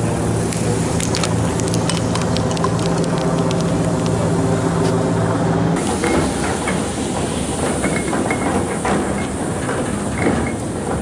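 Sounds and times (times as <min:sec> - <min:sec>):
low hum: 0:00.0 - 0:06.6.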